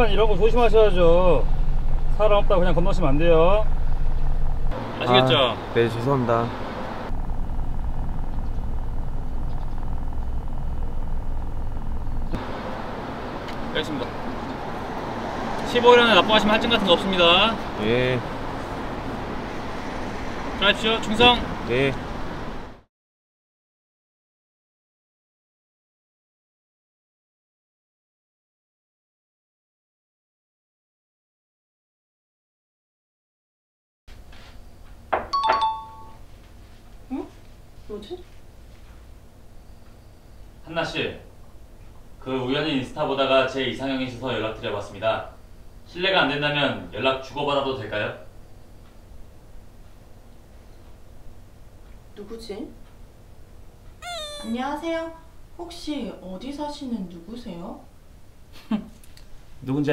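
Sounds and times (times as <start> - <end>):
muffled vehicle engine rumble: 0.0 - 14.7
phone notification chime: 35.3 - 36.2.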